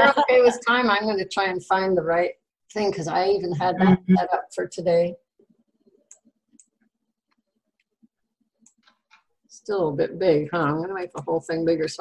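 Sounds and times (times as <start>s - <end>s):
woman speaking: 0.0s - 5.2s, 9.6s - 12.0s
computer mouse clicks: 5.9s - 9.3s.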